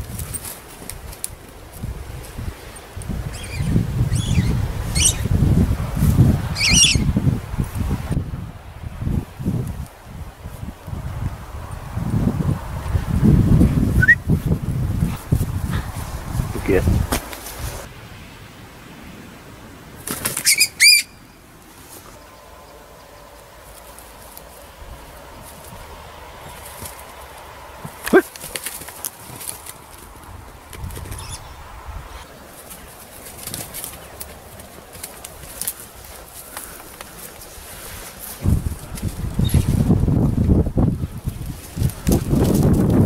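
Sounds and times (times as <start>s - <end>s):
low rumbling on microphone: 1.8s - 17.9s, 38.4s - 43.0s
bird chirping: 3.3s - 5.3s, 6.6s - 7.1s, 20.4s - 21.4s, 31.1s - 31.6s
bird wingbeats clattering: 20.0s - 20.7s, 26.5s - 31.4s, 32.5s - 37.5s.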